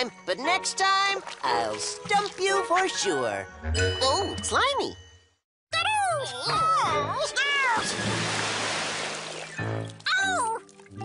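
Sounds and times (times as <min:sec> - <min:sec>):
music: 0:00.0 - 0:11.0
rush of falling water: 0:07.9 - 0:09.5.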